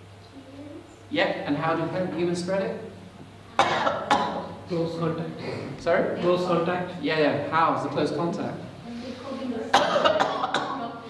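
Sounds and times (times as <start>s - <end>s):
man coughing: 3.6s - 4.7s, 5.4s - 5.8s, 9.7s - 10.8s.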